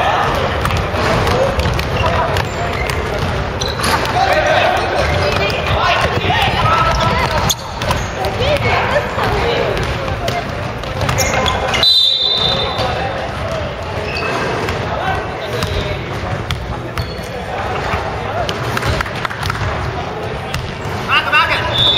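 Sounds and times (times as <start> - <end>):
basketballs bouncing on wooden floor: 0.0 - 17.7, 18.4 - 21.1
indistinct shouting and chatter: 0.0 - 21.9.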